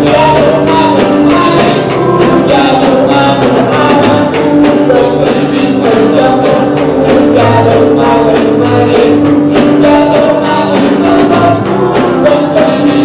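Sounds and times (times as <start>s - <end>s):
acoustic guitars: 0.0s - 13.0s
folk ensemble singing: 0.0s - 13.0s
steady rhythmic beat: 0.0s - 13.0s.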